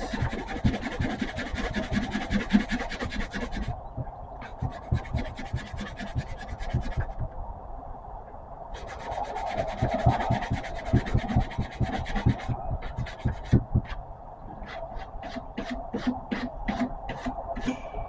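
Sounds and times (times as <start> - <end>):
sanding block scratching wood: 0.0 - 3.7, 4.4 - 7.2, 8.8 - 14.0, 14.7 - 17.7.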